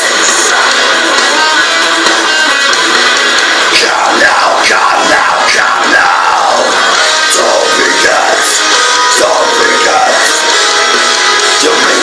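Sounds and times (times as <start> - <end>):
death metal backing track: 0.0 - 12.0
harsh screamed vocal: 3.6 - 10.4, 11.5 - 12.0.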